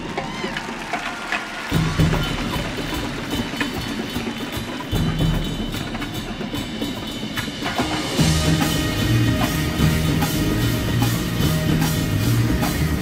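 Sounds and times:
cymbals: 0.0s - 13.0s.

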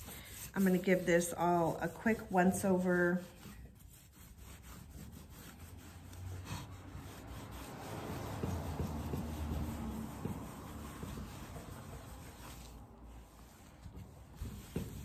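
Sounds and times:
cloth scrubbing wax on board: 0.0s - 15.0s.

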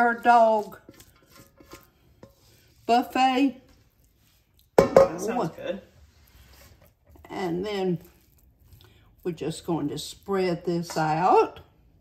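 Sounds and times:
spatula scraping a bowl: 0.0s - 11.4s.

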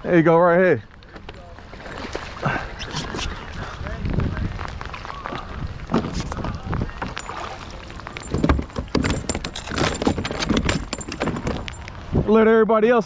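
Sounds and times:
water splashing: 1.4s - 3.6s, 4.5s - 12.0s
knocks and rattles against plastic kayak: 4.9s - 12.0s.

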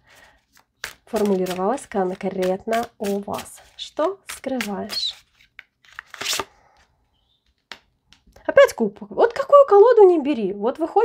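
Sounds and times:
cards shuffling: 0.1s - 6.5s.

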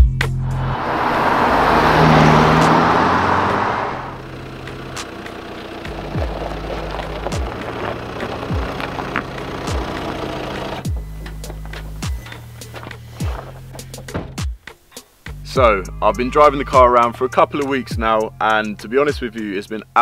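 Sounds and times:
background music: 0.0s - 20.0s
car driving past: 0.4s - 13.3s.

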